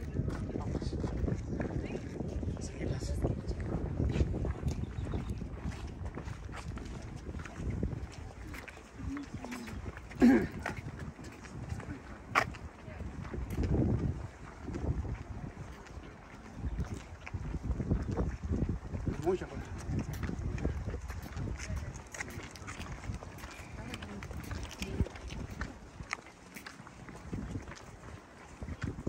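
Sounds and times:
footsteps on concrete: 0.0 - 29.0.

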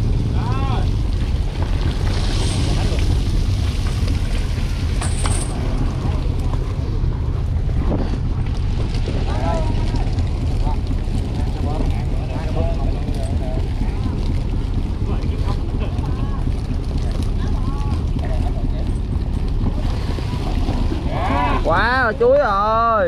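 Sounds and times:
diesel engine rumble: 0.0 - 23.0
wind buffeting microphone: 0.0 - 23.0.

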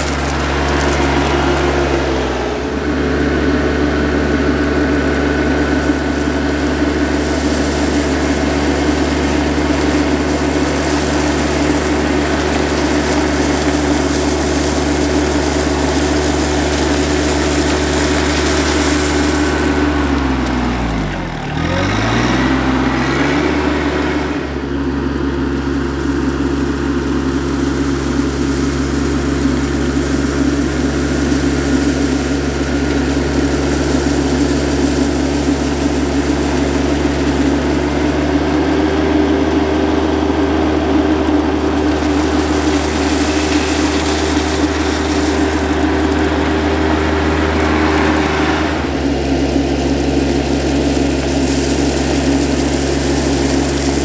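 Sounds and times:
tractor diesel engine running: 0.0 - 54.0
tyres on gravel: 0.0 - 54.0.

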